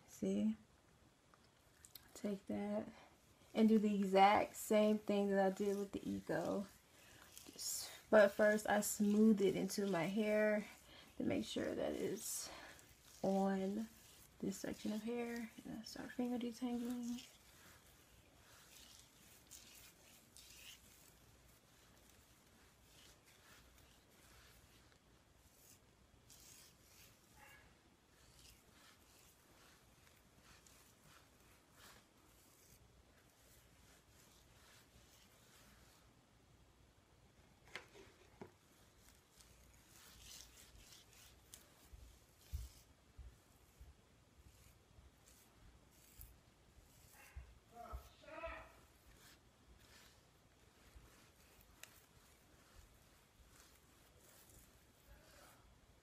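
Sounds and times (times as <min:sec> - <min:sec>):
fingers rustling through hair: 0:01.4 - 0:36.5, 0:37.4 - 0:56.0
rubs and knocks: 0:03.7 - 0:36.0.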